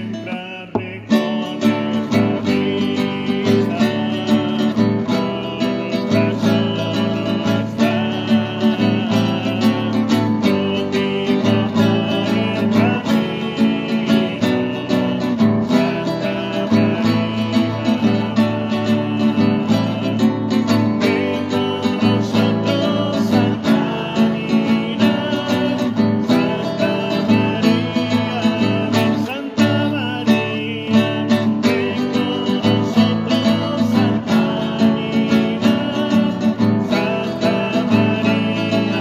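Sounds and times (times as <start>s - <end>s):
acoustic guitar strumming chords: 0.0s - 39.0s.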